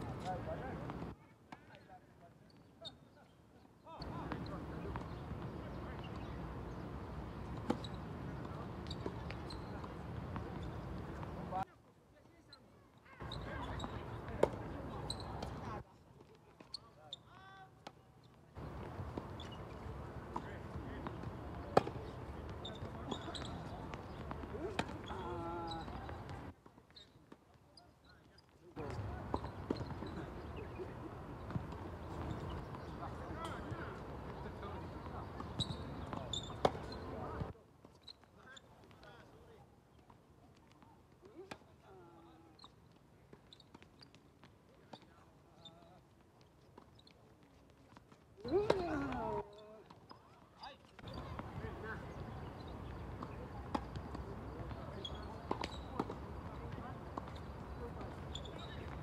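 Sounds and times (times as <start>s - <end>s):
faint distant voices: 0.0s - 59.0s
tennis balls bouncing on hard court: 4.0s - 11.5s, 13.2s - 15.8s, 18.6s - 26.5s, 28.8s - 37.5s, 48.1s - 50.2s, 50.9s - 59.0s
tennis balls struck by rackets: 4.0s - 11.5s, 13.3s - 15.8s, 18.6s - 26.4s, 28.8s - 37.5s, 48.4s - 50.0s, 51.0s - 58.2s.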